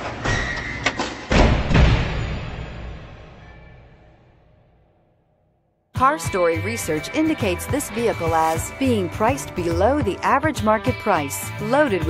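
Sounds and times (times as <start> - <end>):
cinematic music: 6.0 - 12.0.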